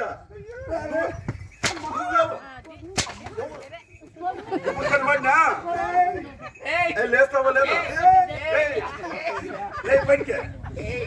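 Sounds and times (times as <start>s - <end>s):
sharp crack: 1.6s - 2.0s, 3.0s - 3.4s.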